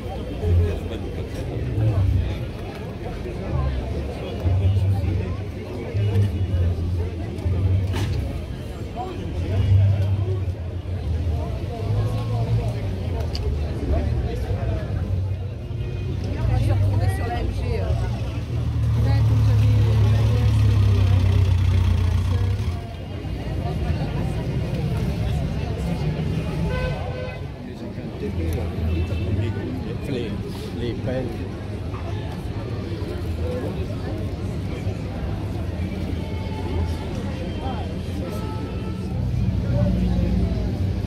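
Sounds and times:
crowd chatter: 0.0s - 41.0s.

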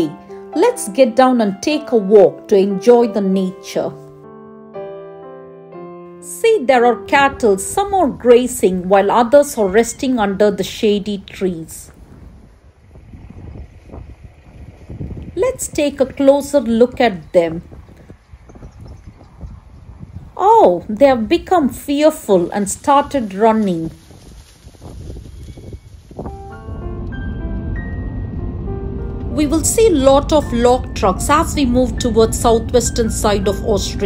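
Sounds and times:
background music of held notes: 0.0s - 10.3s, 26.2s - 34.0s
wind buffeting microphone: 6.8s - 34.0s
cattle running across grass: 11.9s - 15.4s, 23.0s - 26.4s.

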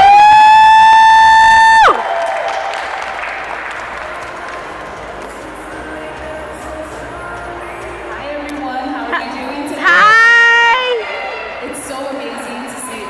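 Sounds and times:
audience applause: 0.0s - 5.8s.

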